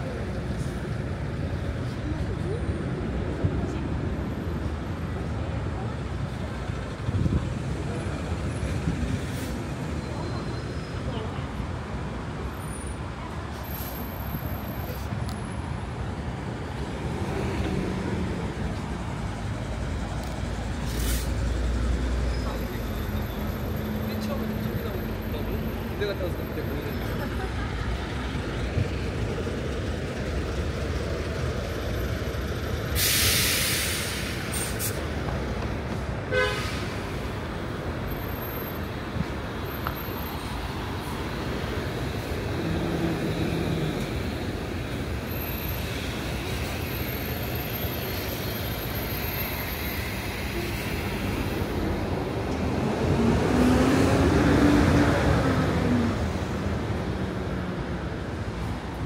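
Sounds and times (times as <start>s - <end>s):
passing vehicles: 0.0s - 59.0s
short sharp hiss: 20.8s - 21.4s, 33.0s - 35.0s.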